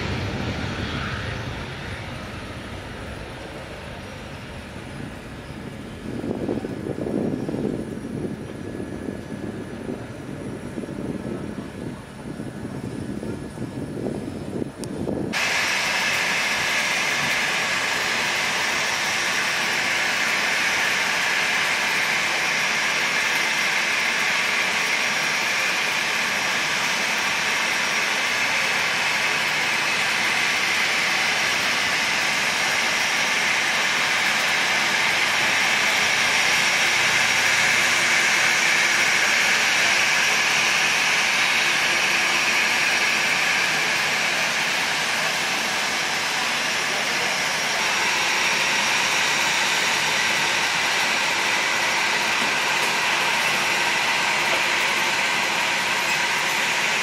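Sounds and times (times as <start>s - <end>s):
jet engines whining: 0.0s - 57.0s.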